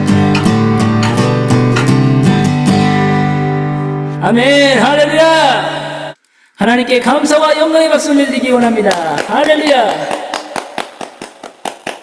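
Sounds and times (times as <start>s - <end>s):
man clapping hands: 8.6s - 12.0s.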